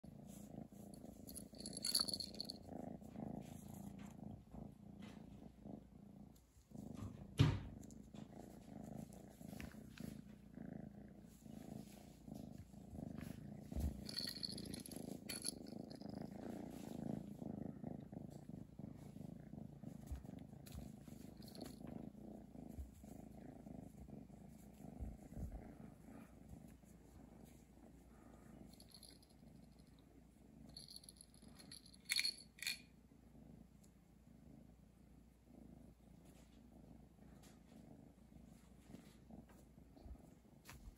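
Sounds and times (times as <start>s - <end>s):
kitten purring: 0.0s - 40.9s.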